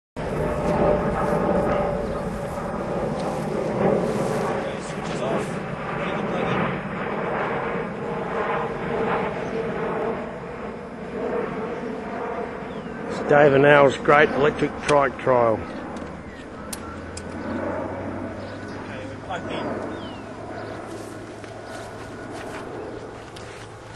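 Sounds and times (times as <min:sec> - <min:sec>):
wind buffeting microphone: 0:00.2 - 0:23.9.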